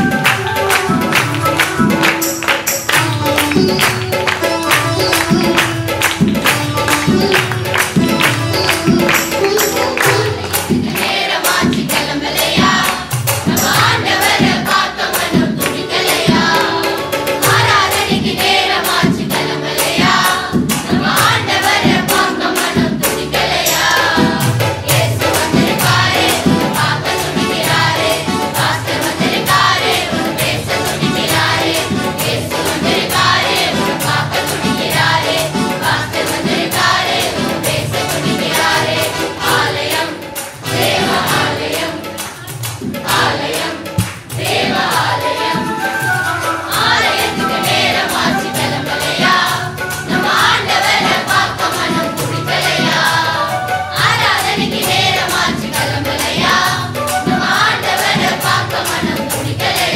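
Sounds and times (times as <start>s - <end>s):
choir singing: 0.0s - 59.9s.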